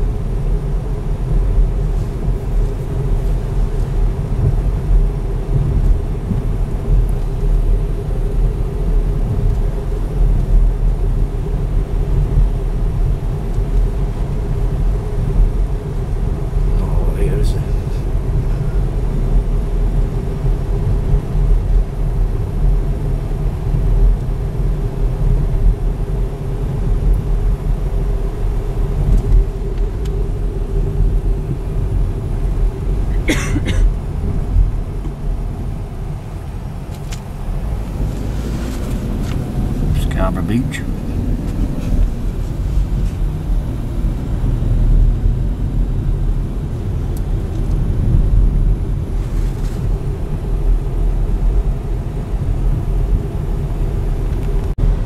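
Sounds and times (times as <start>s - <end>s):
car interior road noise: 0.0s - 55.0s
constant hum: 0.0s - 55.0s.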